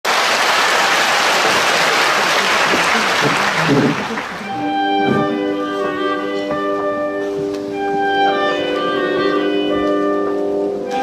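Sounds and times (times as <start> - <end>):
audience applauding: 0.0 - 4.7.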